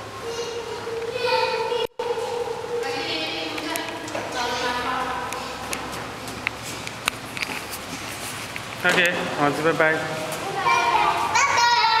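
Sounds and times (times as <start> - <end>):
child vocalizing high-pitched note: 0.2 - 3.4.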